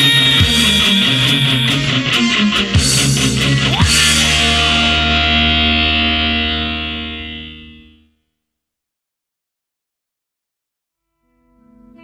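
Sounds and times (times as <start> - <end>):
bass ringing: 0.0 - 7.9
distorted electric guitar chord: 0.0 - 8.0.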